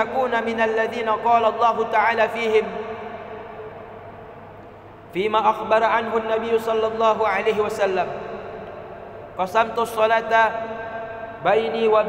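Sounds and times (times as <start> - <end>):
man's amplified speech echoing: 0.0 - 3.9, 5.1 - 12.0.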